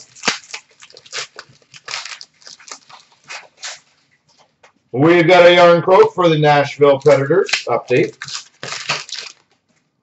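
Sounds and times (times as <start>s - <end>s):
foil wrapper crinkling: 0.0s - 4.1s, 6.6s - 9.7s.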